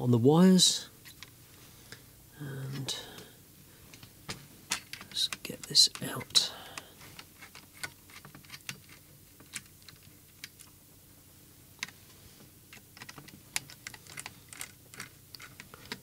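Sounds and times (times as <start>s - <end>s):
fingers clicking and tapping parts: 3.9s - 10.8s, 12.7s - 16.0s.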